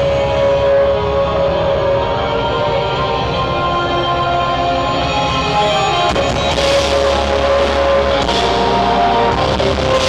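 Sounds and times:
distorted guitars: 0.0 - 10.0
drums: 0.0 - 10.0.

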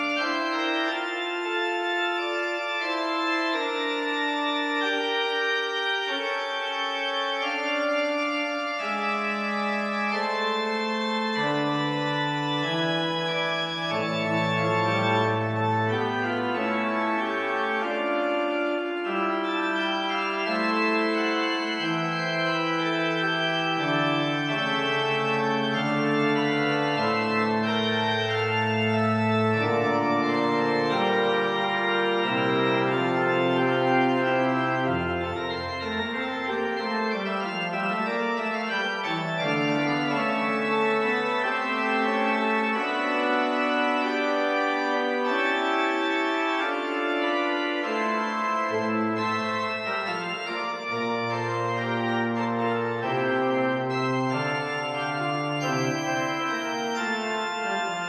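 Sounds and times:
pipe organ playing slow prelude: 0.0 - 58.0
deep organ pedal note: 2.2 - 58.0.

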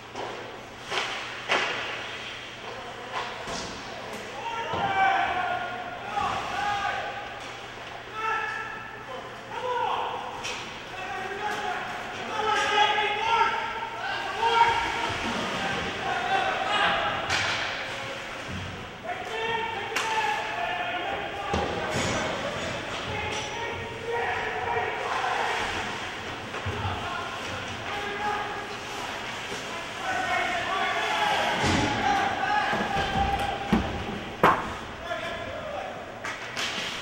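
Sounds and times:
voices shouting: 4.3 - 7.4, 8.1 - 18.3, 19.0 - 34.4
people shouting: 4.4 - 7.2, 11.0 - 17.5, 29.6 - 34.1.

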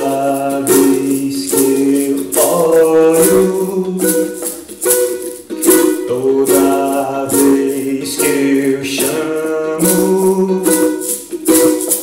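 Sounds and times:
ukulele strumming: 0.0 - 12.0.

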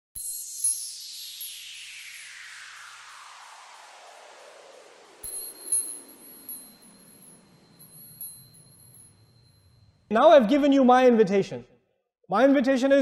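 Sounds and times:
bright chime tinkles: 0.2 - 2.4, 5.2 - 10.1
high ringing tone: 0.2 - 3.1, 5.2 - 10.1.

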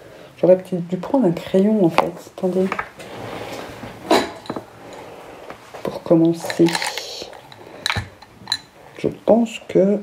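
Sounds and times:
makeup items rustling: 1.6 - 8.8.

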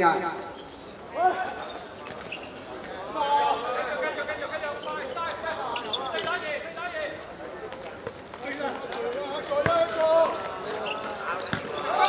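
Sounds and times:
sounds of play on hard court: 0.2 - 12.0.

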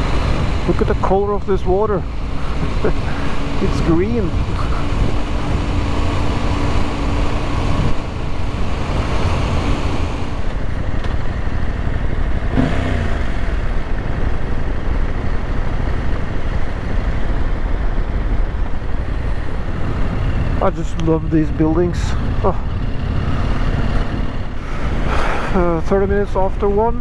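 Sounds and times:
motorcycle engine running: 0.0 - 27.0
wind and road noise: 0.0 - 27.0.

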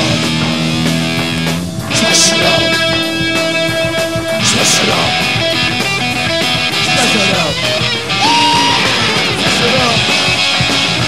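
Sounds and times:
drum kit: 0.0 - 11.0
electric guitar: 0.0 - 11.0
punk rock band playing live: 0.0 - 11.0.

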